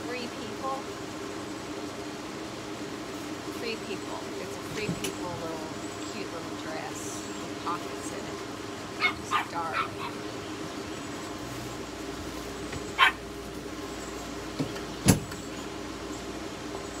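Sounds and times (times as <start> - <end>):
faint steady hum: 0.0 - 17.0
dog yipping: 9.0 - 10.2, 12.9 - 13.2.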